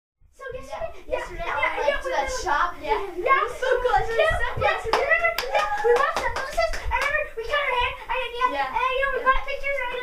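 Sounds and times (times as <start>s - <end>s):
boys' voices: 0.3s - 10.0s
hand claps: 4.9s - 7.2s.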